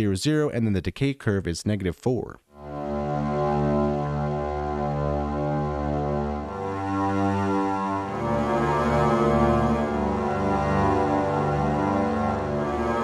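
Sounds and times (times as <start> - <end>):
low synth string notes: 2.6 - 13.0.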